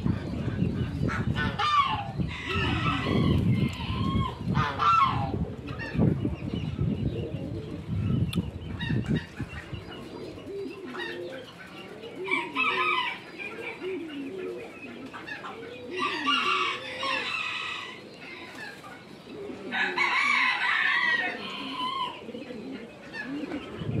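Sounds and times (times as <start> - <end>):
geese honking: 4.6 - 5.4.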